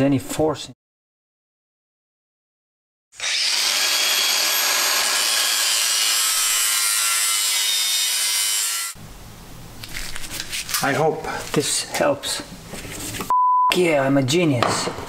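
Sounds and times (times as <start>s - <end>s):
power tool working metal: 3.2s - 9.0s.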